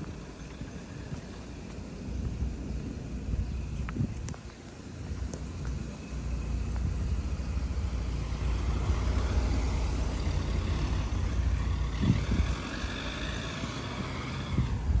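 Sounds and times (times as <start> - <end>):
vehicles driving past: 0.0 - 15.0.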